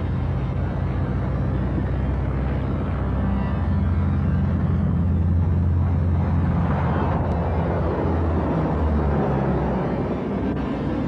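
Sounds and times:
aircraft engines droning: 0.0s - 11.0s.

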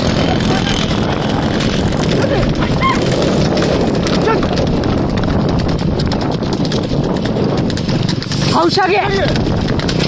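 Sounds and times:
galloping hooves on dirt: 0.0s - 10.0s.

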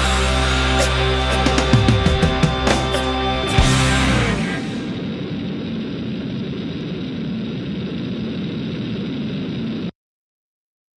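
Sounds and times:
steady rumbling noise: 0.0s - 10.0s.

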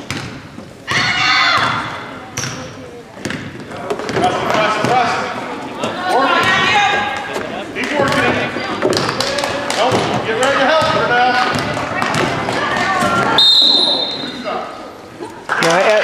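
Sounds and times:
basketball bouncing on hardwood floor: 3.2s - 4.2s
referee's whistle blast: 13.4s - 14.4s.

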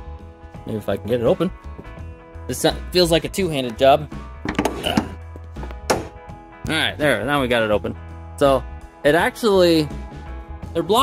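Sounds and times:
background music: 0.0s - 11.0s
hood catch releasing with clunk: 4.4s - 6.2s.

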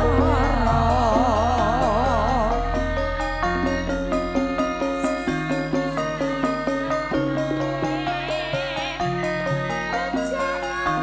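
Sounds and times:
high lead note with vibrato: 0.0s - 10.9s.

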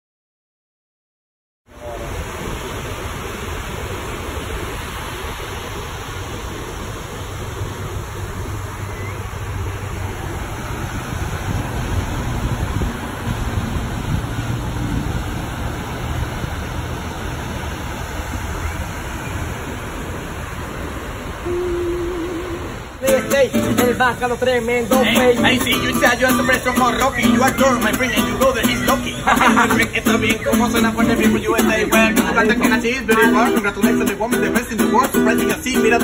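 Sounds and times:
waves breaking on beach: 1.7s - 36.0s
brief wavering tone: 21.4s - 22.9s.

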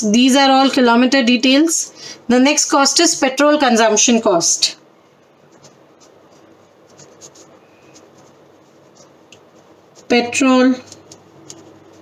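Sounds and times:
pen writing on paper: 5.6s - 12.0s.

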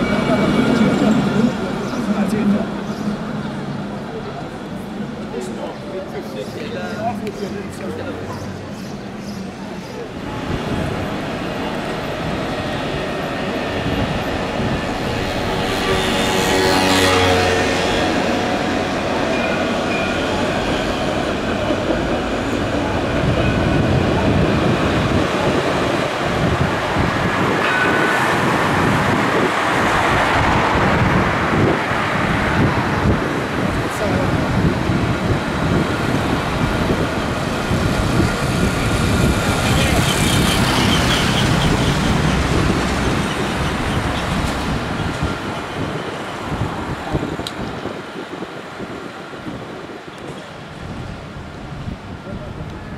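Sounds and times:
road traffic: 0.0s - 52.9s
trams rolling on rails: 0.0s - 52.9s.

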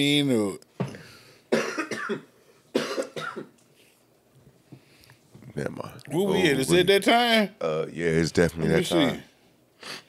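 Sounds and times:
man coughing: 1.5s - 3.6s.

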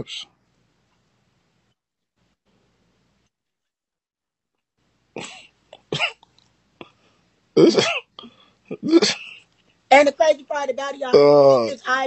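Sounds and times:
person clearing throat: 5.2s - 6.2s, 7.6s - 9.4s.

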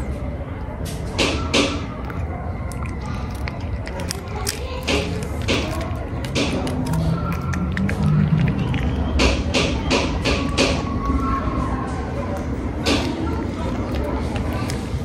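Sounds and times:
cat eating wet food: 0.0s - 15.0s.

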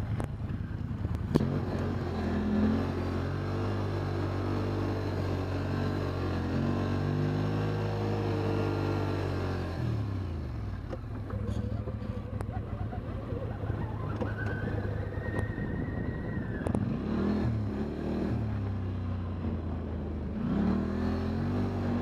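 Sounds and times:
quad engine revving: 1.2s - 18.8s, 20.4s - 22.0s.

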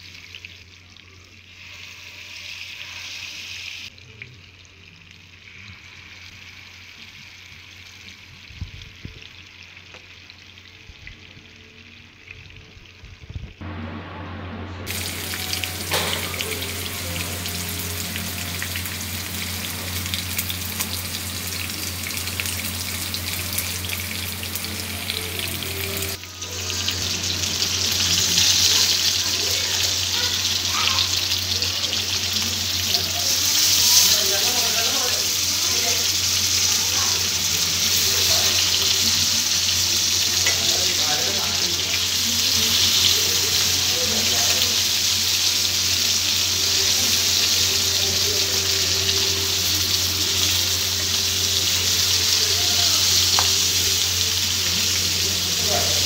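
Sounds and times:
fish sizzling in oil: 0.0s - 13.6s, 14.9s - 56.0s
steady low hum: 13.6s - 28.6s.

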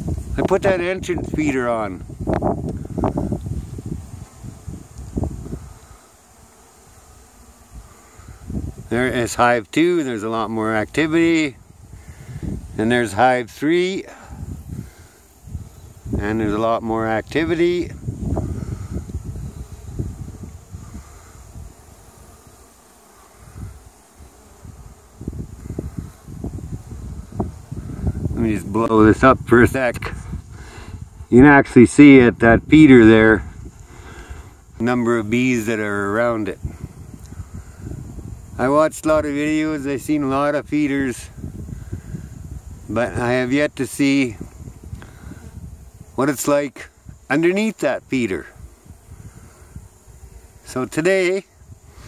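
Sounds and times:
wind rumble on microphone: 0.0s - 6.0s, 6.9s - 9.6s, 10.5s - 13.5s, 14.1s - 22.6s, 23.3s - 46.2s, 48.1s - 50.6s, 51.5s - 52.0s
bees buzzing: 0.0s - 52.0s.

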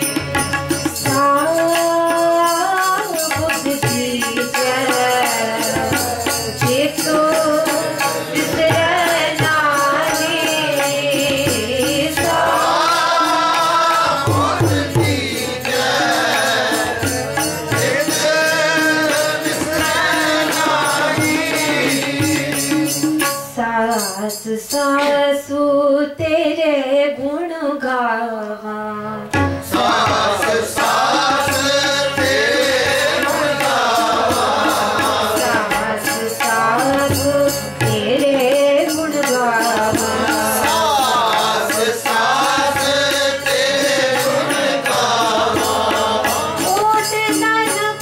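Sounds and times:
tabla drum strokes: 0.0s - 25.3s, 29.3s - 48.0s
woman singing a hymn: 6.6s - 7.8s, 23.6s - 29.1s, 35.8s - 40.1s, 46.7s - 48.0s.

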